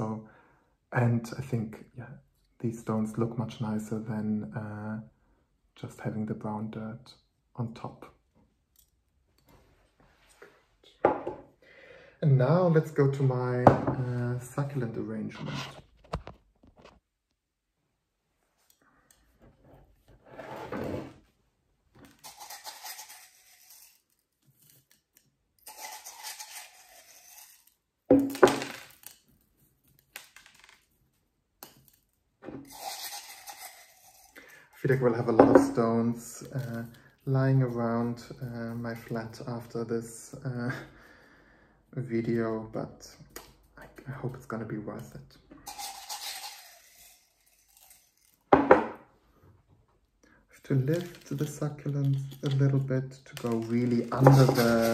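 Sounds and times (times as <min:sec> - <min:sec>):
pebbles clattering in ceramic mug: 0:53.4 - 0:54.9.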